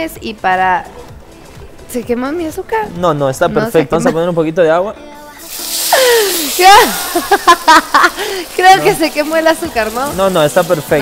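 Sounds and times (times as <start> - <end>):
water hissing in hot pan: 5.3 - 11.0.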